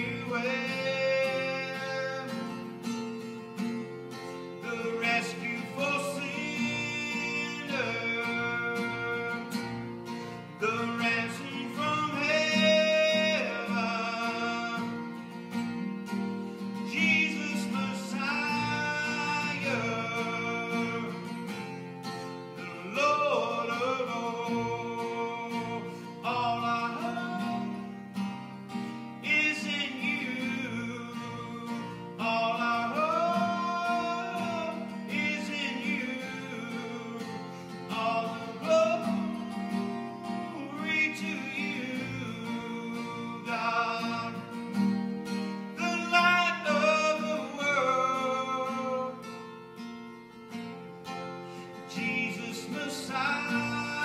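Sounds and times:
man singing worship song: 0.0s - 2.7s, 4.6s - 15.3s, 16.8s - 21.8s, 22.6s - 28.2s, 29.2s - 44.6s, 45.7s - 49.3s, 51.7s - 54.0s
acoustic guitar: 0.0s - 54.0s.

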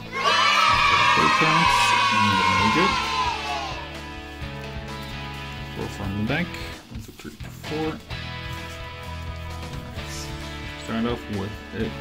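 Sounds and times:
voices shouting and whooping: 0.0s - 4.0s
music: 0.0s - 12.0s.

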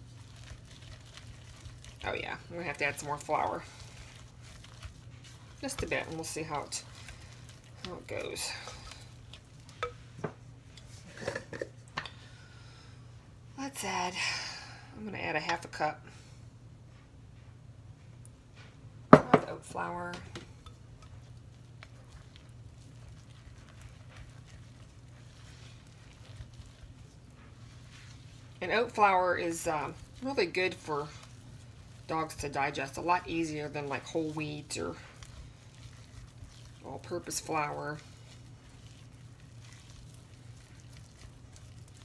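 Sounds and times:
spatula stirring sticky dough: 0.0s - 11.6s, 19.7s - 42.0s
low steady hum: 0.0s - 42.0s
utensil scraping in ceramic bowl: 0.2s - 11.7s.

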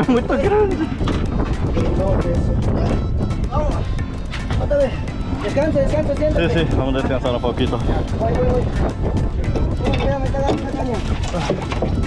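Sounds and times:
background music: 0.0s - 12.0s
boat noise: 0.0s - 12.0s
wind rumble: 0.0s - 12.0s.

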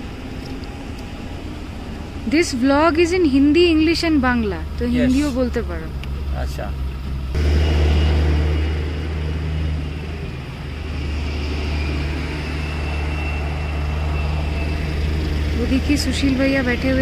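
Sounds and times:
truck engines rumbling: 0.0s - 17.0s.

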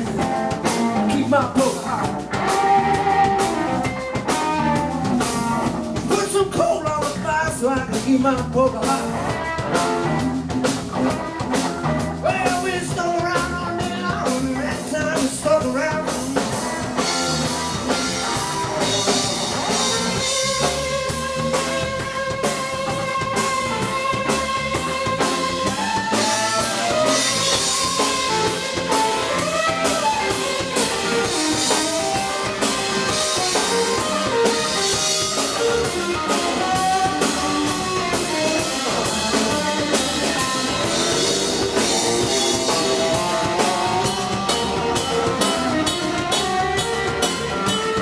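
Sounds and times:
drum kit steady beat: 0.0s - 48.0s
electric bass: 0.0s - 48.0s
electric guitar lead lines: 0.0s - 48.0s.

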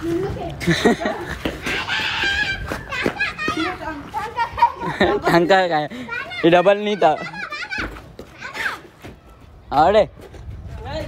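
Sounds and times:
children shouting: 1.6s - 3.8s.

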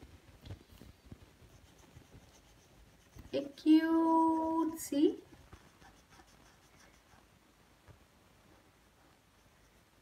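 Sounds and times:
marker scratching on paper: 1.1s - 7.3s.

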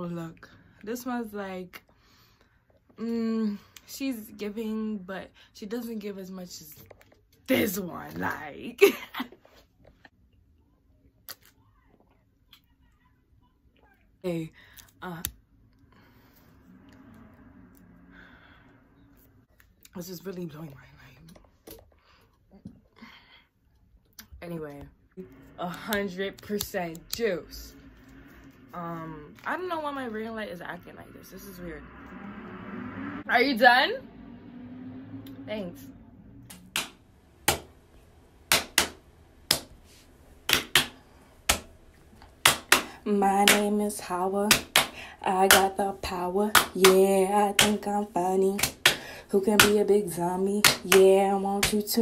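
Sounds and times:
low steady hum: 13.5s - 52.0s
clap-like percussion beat: 36.5s - 37.7s, 38.5s - 39.8s, 40.5s - 41.7s, 42.4s - 43.8s, 44.5s - 45.8s, 46.5s - 47.9s, 48.6s - 49.9s, 50.6s - 51.9s.

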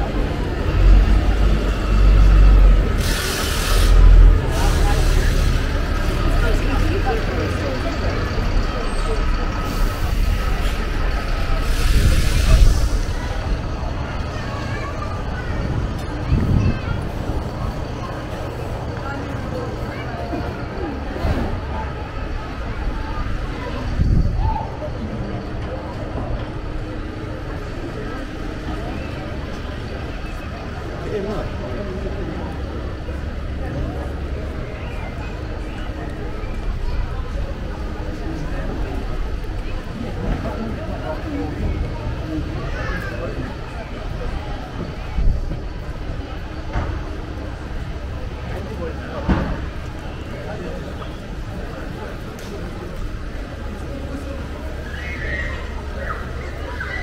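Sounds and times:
indistinct voices: 0.0s - 57.0s
low traffic rumble: 0.0s - 57.0s
people chatting: 0.0s - 57.0s
brief hissing bursts: 3.0s - 5.6s.

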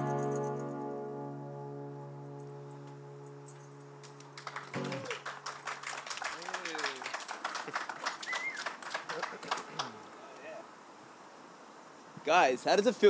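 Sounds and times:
held music chord: 0.0s - 4.8s
crowd clapping: 4.0s - 10.1s
whoops and cheers: 4.8s - 5.4s, 8.1s - 8.8s.

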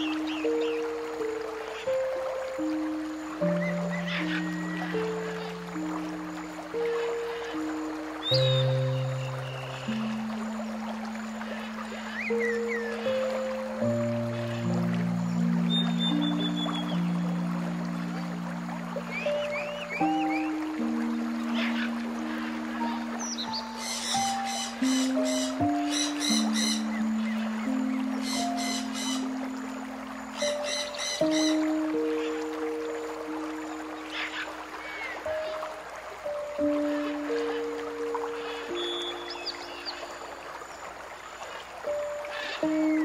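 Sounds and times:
slow soft background music: 0.0s - 43.0s
bird chirps: 15.6s - 17.2s, 21.4s - 29.3s, 30.4s - 32.4s.

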